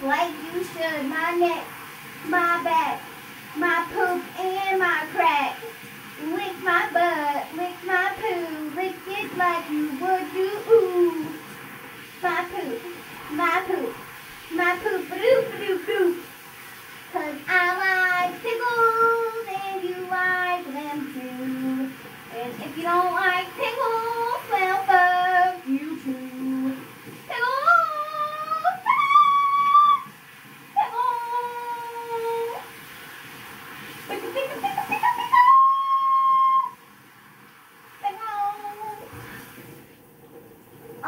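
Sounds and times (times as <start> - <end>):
child singing: 2.3 - 3.0, 3.6 - 11.4, 12.2 - 16.2, 17.2 - 30.1, 30.8 - 32.6.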